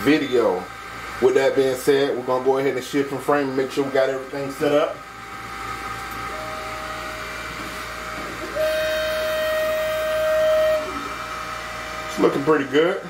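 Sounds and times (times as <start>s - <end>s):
stepper motors whining: 8.1s - 13.0s.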